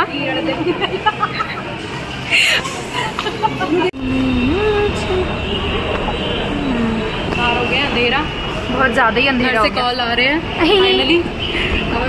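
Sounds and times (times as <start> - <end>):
low rumble of road traffic: 0.0 - 12.0
voice-like hum rising in pitch: 4.0 - 7.4.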